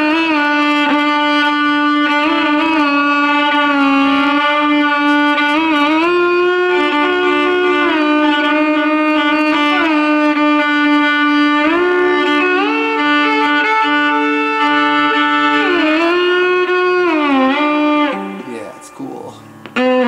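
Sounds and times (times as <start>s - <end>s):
solo violin sustained notes: 0.0s - 20.0s.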